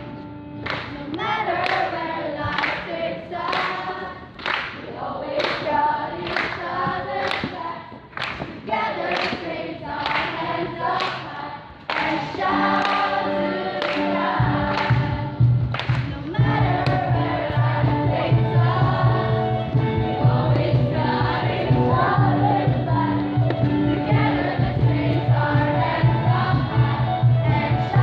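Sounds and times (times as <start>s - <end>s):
large choir singing: 1.1s - 8.0s, 8.7s - 15.5s, 16.3s - 28.0s
steady beat: 14.0s - 28.0s.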